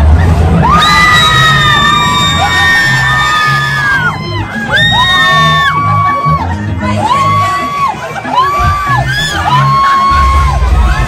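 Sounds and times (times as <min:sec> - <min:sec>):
loud ride music with bass: 0:00.0 - 0:11.0
riders screaming: 0:00.6 - 0:06.4, 0:07.0 - 0:11.0.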